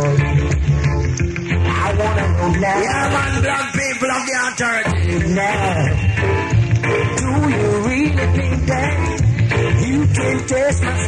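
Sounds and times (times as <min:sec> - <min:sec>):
heavy bass line: 0:00.0 - 0:11.0
reggae song with singing: 0:00.0 - 0:11.0.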